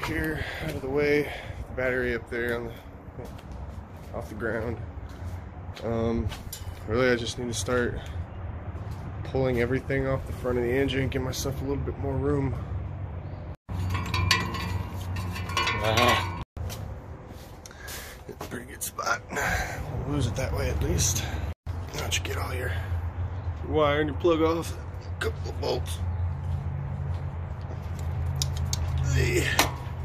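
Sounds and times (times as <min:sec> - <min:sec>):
metal tools clinking: 0:13.7 - 0:16.5.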